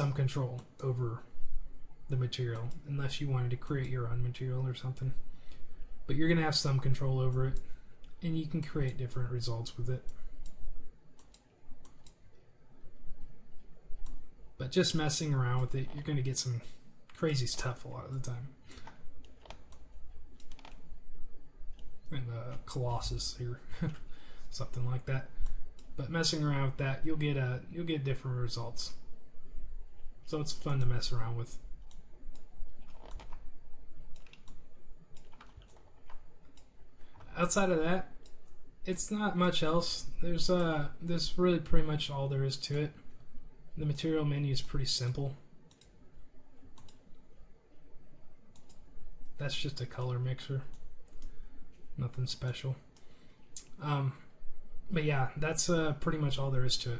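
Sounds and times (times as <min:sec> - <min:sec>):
faint room noise: 0:00.0 - 0:56.9
low steady hum: 0:00.0 - 0:56.9
computer mouse clicking: 0:11.2 - 0:12.3, 0:13.2 - 0:14.3, 0:18.7 - 0:20.9, 0:31.8 - 0:33.5, 0:34.1 - 0:37.3, 0:38.2 - 0:38.6, 0:45.7 - 0:46.0, 0:46.7 - 0:47.2, 0:48.5 - 0:48.9, 0:50.7 - 0:51.4
computer control clicks: 0:46.7 - 0:47.1, 0:48.5 - 0:48.8.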